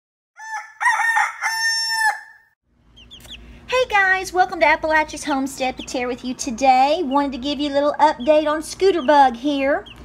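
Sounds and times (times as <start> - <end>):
rooster crowing: 0.4 - 2.6.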